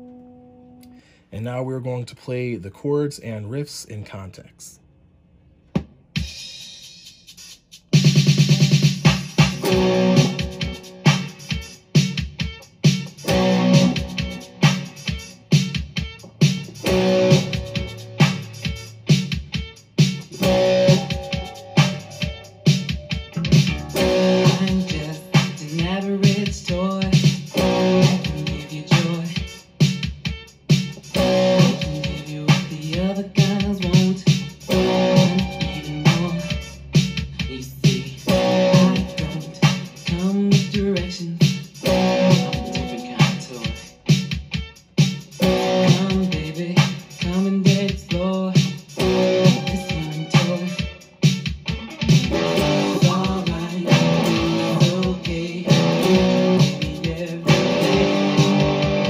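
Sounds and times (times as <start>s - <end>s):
backing track with beat and bass: 5.7s - 59.0s
electric guitar riff: 9.6s - 11.8s, 13.1s - 15.4s, 16.5s - 19.2s, 20.2s - 26.9s, 27.5s - 29.6s, 31.0s - 37.1s, 37.9s - 41.0s, 41.8s - 44.0s, 45.4s - 46.8s, 49.0s - 50.8s, 51.6s - 59.0s.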